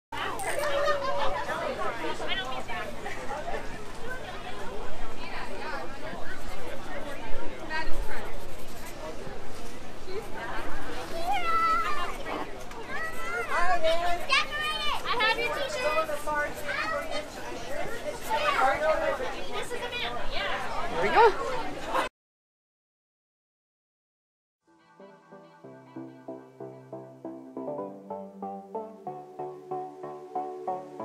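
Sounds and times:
people talking: 0.2s - 22.1s.

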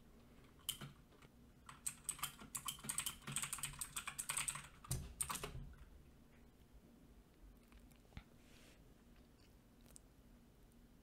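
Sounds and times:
computer keyboard typing: 0.6s - 1.0s, 1.6s - 5.7s.

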